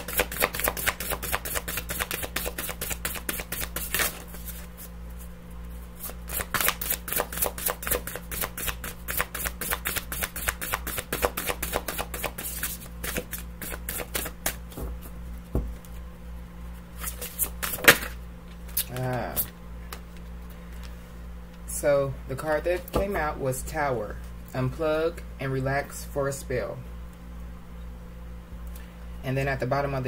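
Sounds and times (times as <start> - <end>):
cards being shuffled: 0.0 - 5.3, 6.0 - 16.0, 17.0 - 20.9.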